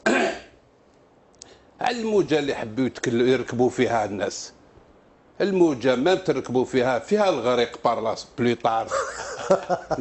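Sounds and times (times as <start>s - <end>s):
man clearing throat: 0.0s - 0.6s
man speaking: 1.8s - 4.6s, 5.4s - 9.1s.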